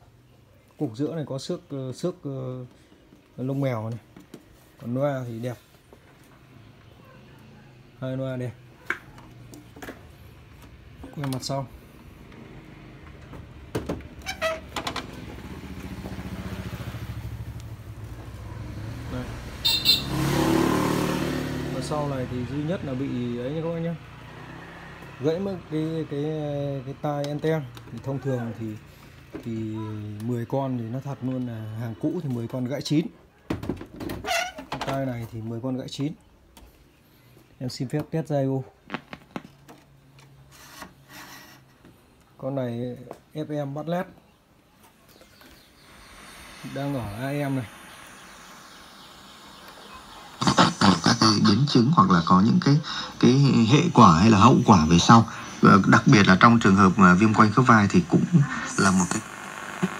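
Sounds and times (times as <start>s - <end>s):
vehicle engine passing: 6.4s - 32.0s, 45.6s - 59.9s
brief high burst: 45.9s - 51.8s.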